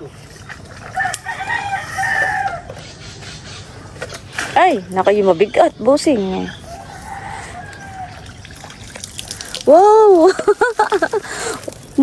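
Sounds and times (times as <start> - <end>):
rooster crowing: 1.0 - 2.7, 6.7 - 8.2.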